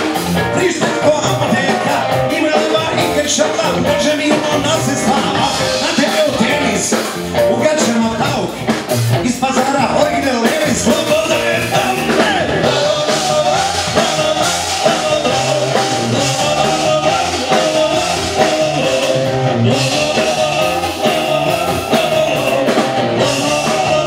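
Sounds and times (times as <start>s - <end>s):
live rock band playing: 0.0s - 24.0s
person singing: 0.0s - 24.0s.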